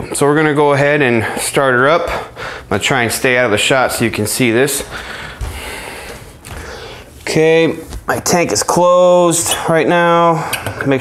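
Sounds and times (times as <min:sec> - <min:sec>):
clothing rustling: 0:03.9 - 0:08.4.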